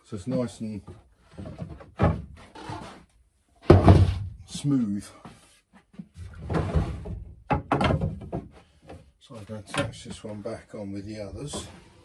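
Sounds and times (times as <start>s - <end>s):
wooden battens knocking and rubbing: 0.3s - 3.0s, 3.6s - 4.6s, 5.2s - 10.4s, 11.1s - 12.0s.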